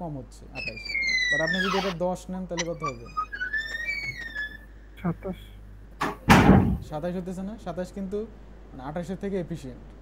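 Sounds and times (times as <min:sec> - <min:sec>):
person talking: 0:00.6 - 0:02.0, 0:02.6 - 0:03.6.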